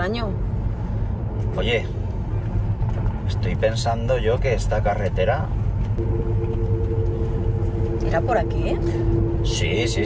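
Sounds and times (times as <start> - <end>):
car driving rumble: 0.0 - 10.0.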